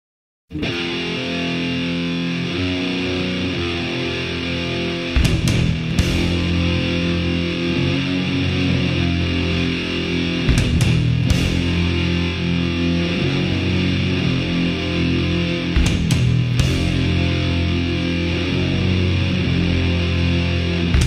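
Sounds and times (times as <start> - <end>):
bass guitar: 0.5 - 21.0
distorted electric guitar riff: 0.5 - 21.0
sharp drum hits: 15.8 - 16.8.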